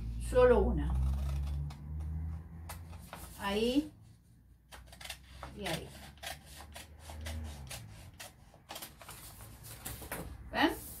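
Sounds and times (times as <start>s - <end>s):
scissors snipping paper: 4.7s - 9.3s
paper rustling: 6.6s - 11.0s.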